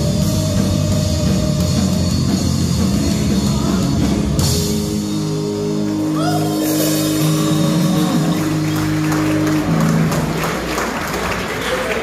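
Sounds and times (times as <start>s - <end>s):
rock band closing chords: 0.0s - 12.0s
audience applause: 7.2s - 12.0s.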